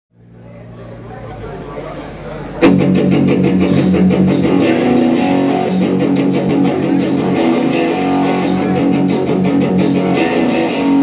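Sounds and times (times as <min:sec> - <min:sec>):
murmur of voices: 0:00.2 - 0:11.0.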